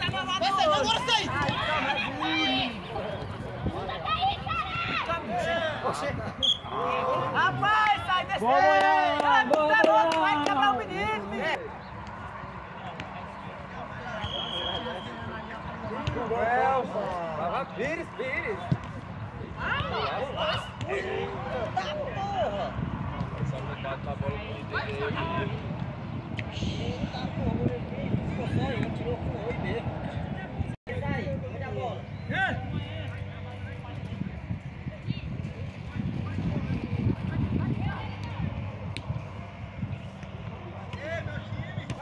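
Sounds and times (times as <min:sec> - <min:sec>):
players shouting: 0:00.0 - 0:18.7, 0:19.5 - 0:23.8
loud shout: 0:03.9 - 0:05.8.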